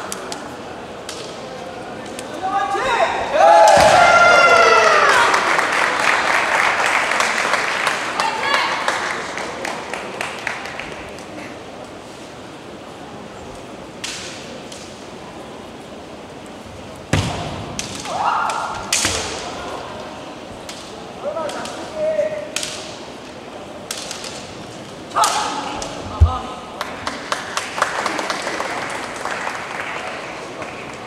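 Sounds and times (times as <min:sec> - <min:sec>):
bamboo swords clacking together: 0:14.0 - 0:15.0, 0:17.7 - 0:19.5, 0:22.5 - 0:23.1, 0:23.8 - 0:26.0.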